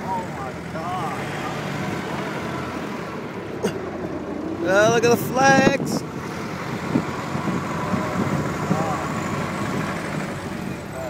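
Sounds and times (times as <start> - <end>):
car engine running: 0.0 - 11.0
road rumble: 0.0 - 11.0.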